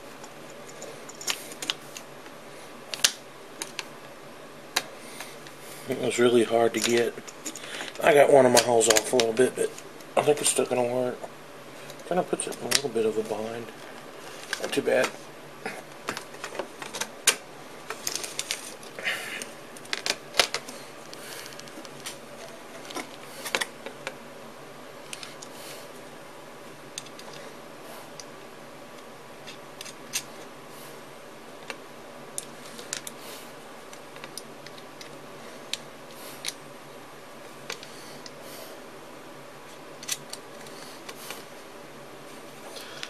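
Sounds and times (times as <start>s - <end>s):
handling rustle: 11.8s - 24.2s.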